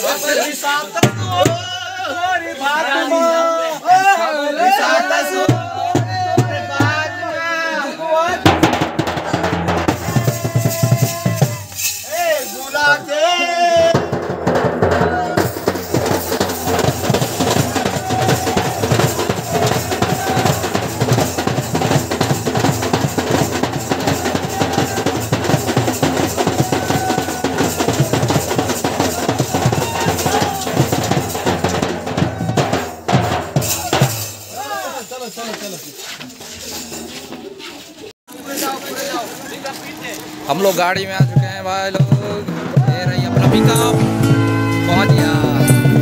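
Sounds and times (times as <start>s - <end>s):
band drums playing dance beat: 1.0s - 1.8s, 5.4s - 7.3s, 8.3s - 12.3s, 13.8s - 34.7s, 40.8s - 46.0s
bass drum beaten with stick: 8.4s - 11.7s, 13.8s - 34.4s, 41.0s - 46.0s.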